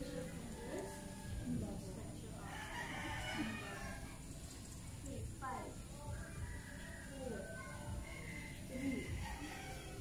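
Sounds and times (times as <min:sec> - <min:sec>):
rooster crowing: 0:02.4 - 0:04.2, 0:06.4 - 0:10.0.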